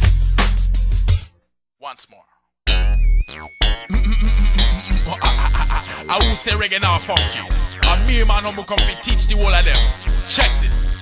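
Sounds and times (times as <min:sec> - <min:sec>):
hip-hop bass line and beat: 0:02.7 - 0:11.0
person rapping: 0:04.0 - 0:11.0.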